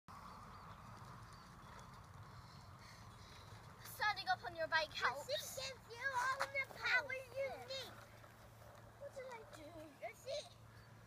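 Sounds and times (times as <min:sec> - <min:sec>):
bicycle rolling on tarmac: 0:00.1 - 0:10.3.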